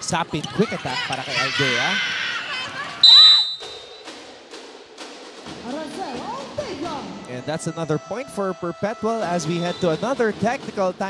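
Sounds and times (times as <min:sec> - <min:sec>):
crowd cheering: 0:00.0 - 0:04.0
referee's whistle blast: 0:03.0 - 0:04.1, 0:09.4 - 0:10.1.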